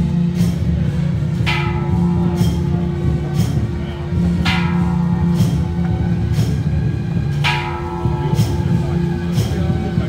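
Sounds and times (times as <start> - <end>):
struck metal percussion ringing: 0.0 - 10.0.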